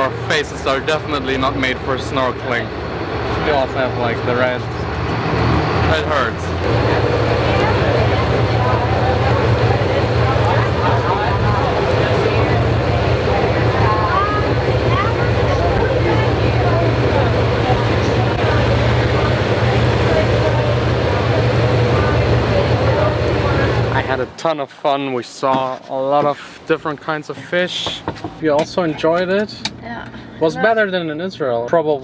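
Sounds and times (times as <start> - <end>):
motorboat engine droning: 0.0 - 25.2
water noise: 0.0 - 28.8
wind: 0.0 - 32.0
faint voices: 5.8 - 24.4.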